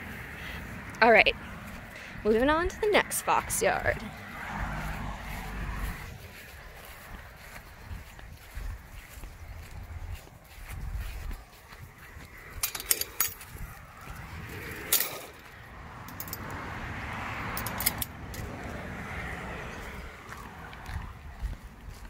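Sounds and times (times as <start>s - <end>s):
footsteps outdoors: 0.0s - 22.0s.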